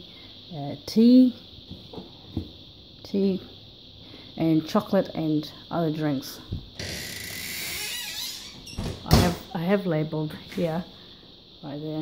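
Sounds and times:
cupboard door squeaking: 6.8 - 9.5.

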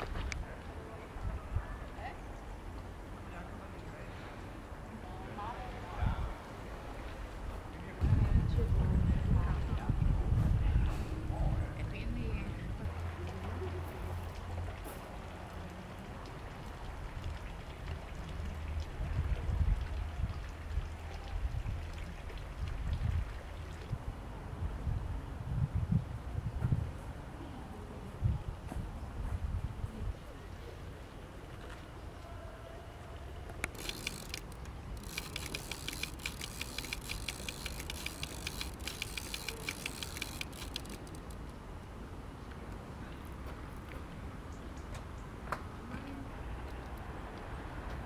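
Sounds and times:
fountain water splashing: 12.9 - 24.0, 33.2 - 41.8
rapid light ticking: 33.6 - 41.5.

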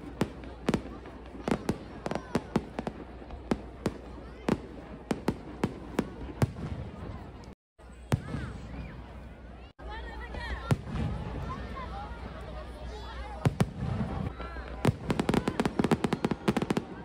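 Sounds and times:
fireworks bursting: 0.0 - 9.2, 10.4 - 17.0.

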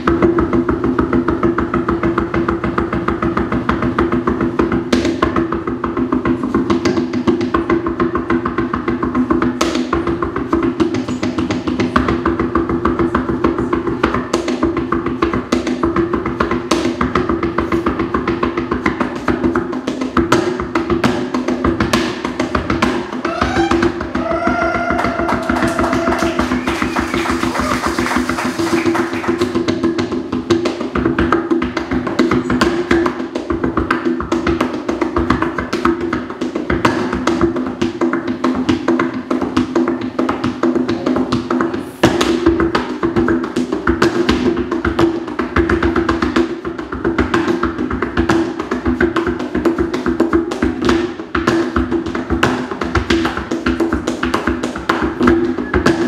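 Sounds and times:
tap shoes on wooden floor: 1.4 - 56.0.

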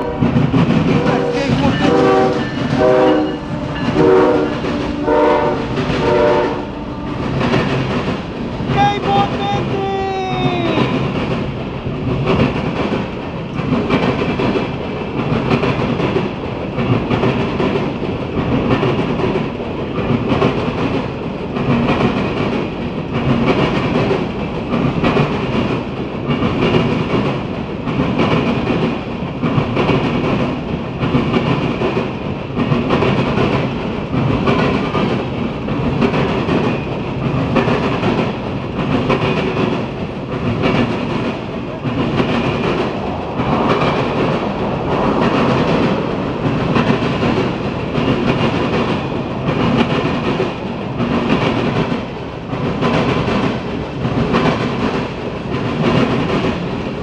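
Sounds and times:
train wheels clacking on rails: 0.0 - 57.0.

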